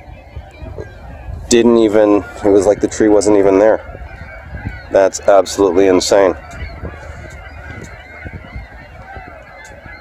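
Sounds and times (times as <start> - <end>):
waterbird flock calling: 0.0 - 10.0.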